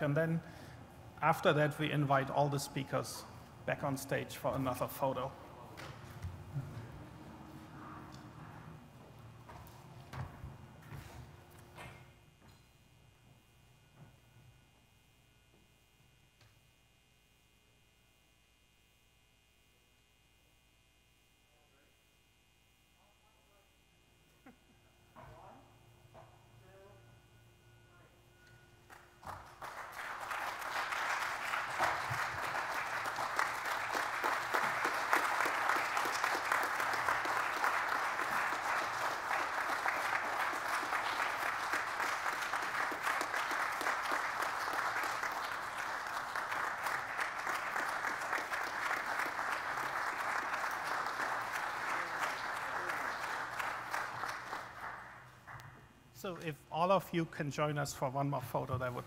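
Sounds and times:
audience applauding: 0:28.9 - 0:55.6.

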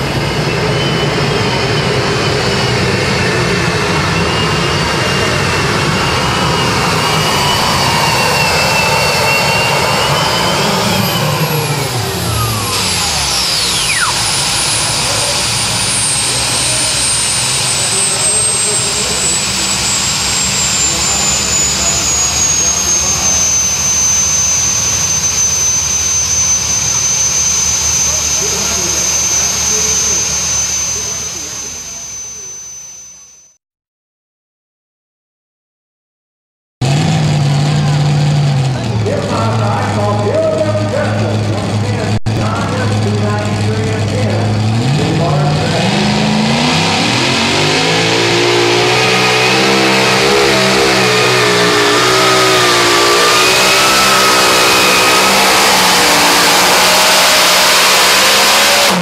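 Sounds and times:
turbine engine whining: 0:00.0 - 0:33.6, 0:36.8 - 0:59.0.

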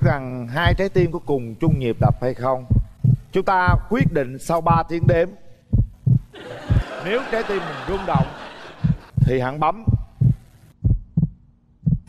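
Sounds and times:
heartbeat thumps: 0:00.0 - 0:07.2, 0:07.8 - 0:12.0.

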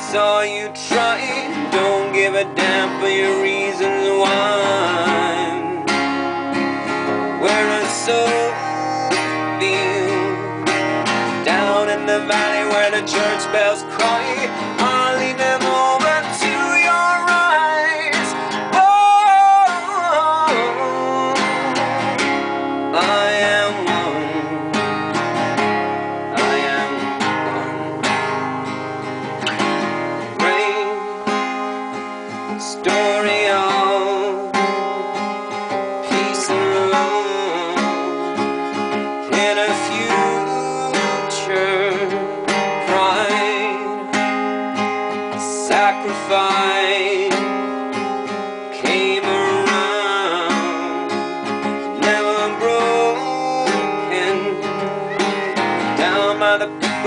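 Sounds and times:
man singing with vibrato: 0:00.0 - 0:29.4, 0:30.1 - 0:57.0
acoustic guitar strumming: 0:00.0 - 0:57.0.

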